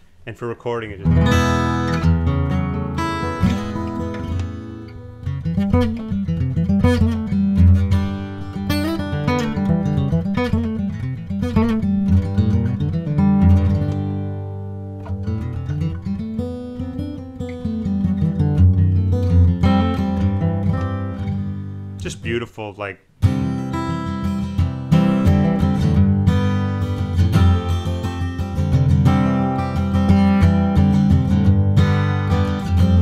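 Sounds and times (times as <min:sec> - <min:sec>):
acoustic guitar playing solo: 0:01.0 - 0:33.0.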